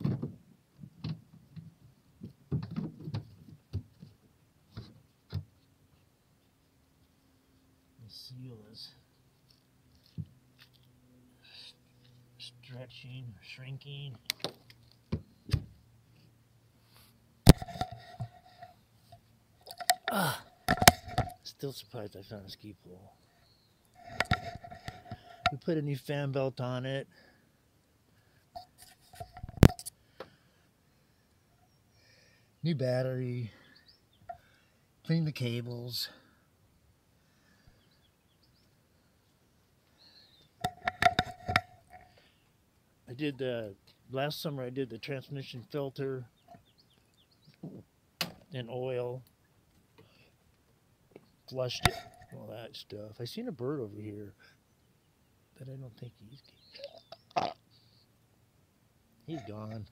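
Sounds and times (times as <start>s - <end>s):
camera handling knocks and clicks: 17.5s - 18.4s, 20.7s - 21.4s, 24.0s - 25.3s, 40.6s - 42.0s.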